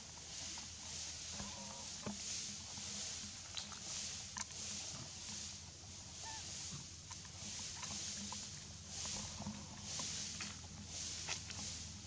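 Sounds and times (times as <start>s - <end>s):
small clicks and rustles: 0.1s - 5.6s, 6.5s - 11.9s.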